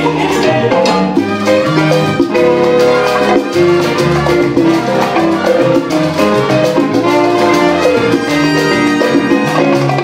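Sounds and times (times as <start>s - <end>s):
live salsa band playing: 0.0s - 10.0s.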